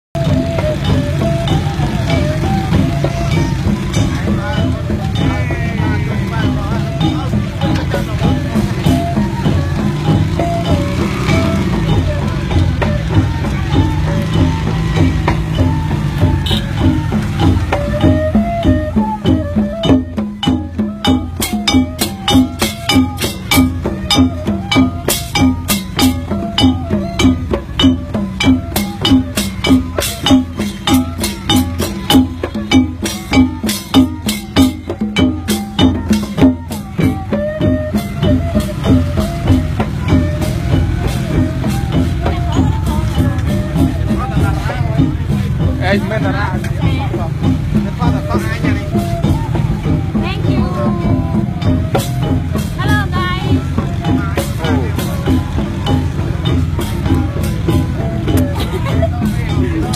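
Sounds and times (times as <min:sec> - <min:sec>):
steady drum beat: 0:00.1 - 0:59.9
loud music with melody: 0:00.2 - 0:59.9.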